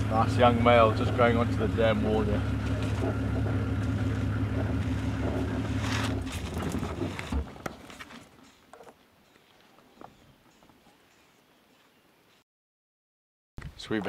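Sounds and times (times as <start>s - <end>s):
vehicle engine humming: 0.0s - 8.9s.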